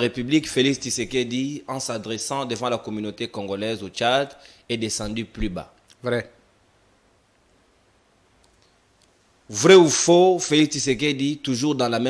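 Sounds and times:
faint clicks: 8.4s - 9.2s.

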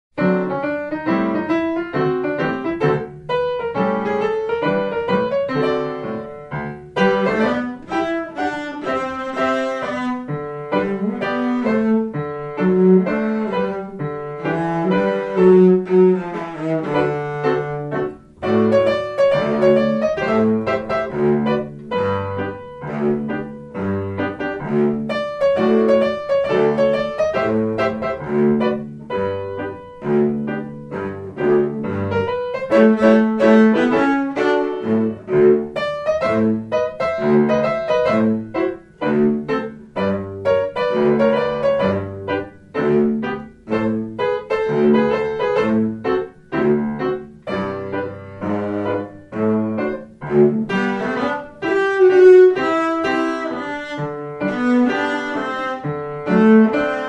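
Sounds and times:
piano chords and runs: 0.1s - 57.0s
cello low notes: 1.2s - 57.0s.

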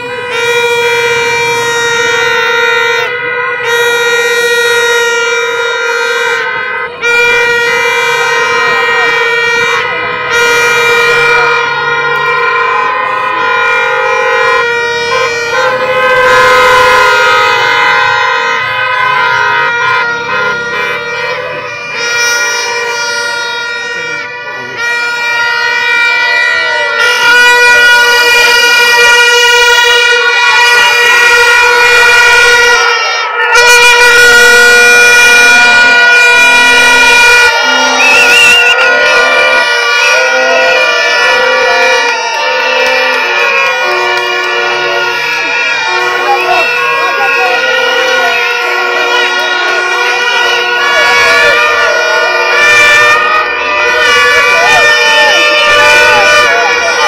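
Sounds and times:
crowd voices: 0.0s - 57.0s
loud sustained horn tone: 0.0s - 57.0s.

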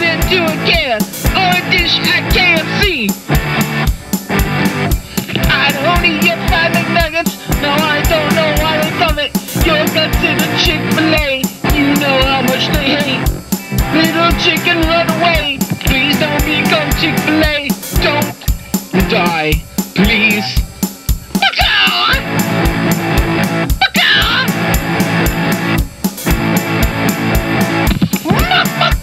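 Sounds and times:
bending guitar lead melody: 0.0s - 29.0s
drum kit beat: 0.0s - 29.0s
hard rock music: 0.0s - 29.0s.

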